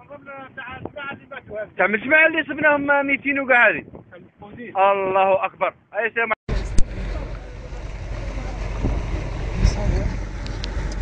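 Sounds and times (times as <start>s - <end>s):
wind buffeting microphone: 0.0s - 5.8s, 6.5s - 11.0s
outboard motors rumbling: 6.5s - 11.0s
propellers churning water: 6.5s - 11.0s.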